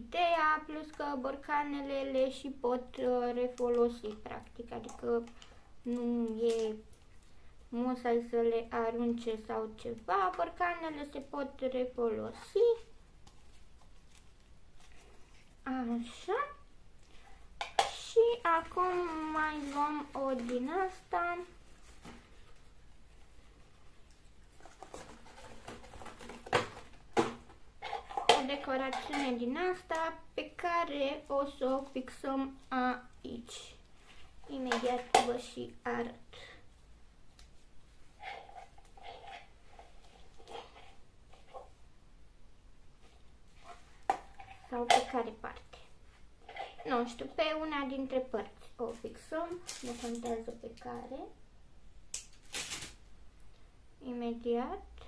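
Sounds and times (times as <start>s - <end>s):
person speaking: 0.0s - 7.1s, 7.7s - 13.0s, 14.8s - 16.7s, 17.8s - 22.2s, 28.1s - 36.8s, 44.5s - 46.0s, 46.8s - 51.4s
paper and tape rustle: 12.7s - 15.6s, 18.4s - 27.0s, 48.9s - 50.7s, 52.3s - 53.1s.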